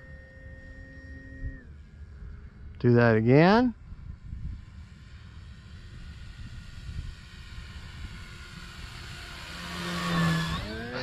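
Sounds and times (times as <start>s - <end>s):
model plane electric motor whine: 0.0s - 2.7s, 3.8s - 11.0s
wind rumble on microphone: 3.7s - 9.4s.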